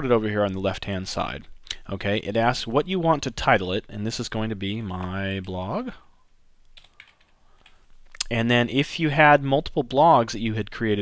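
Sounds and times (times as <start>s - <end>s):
computer keyboard keystrokes: 6.7s - 7.8s.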